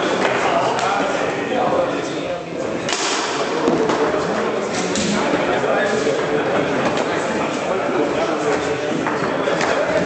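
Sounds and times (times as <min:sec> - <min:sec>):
background chatter: 0:00.0 - 0:10.0
knocks of ball and rods: 0:02.9 - 0:04.2.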